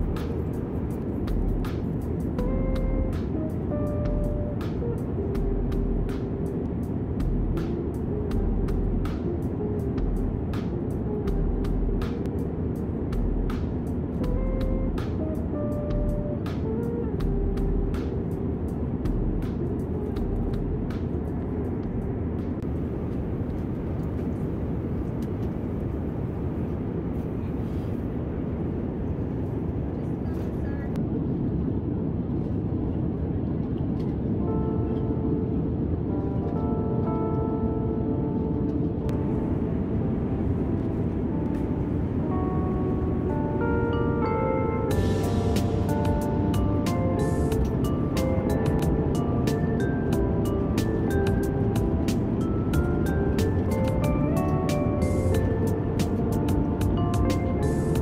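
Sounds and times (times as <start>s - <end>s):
light background music: 0.0s - 25.7s, 33.8s - 58.0s
airliner cabin drone: 0.0s - 58.0s.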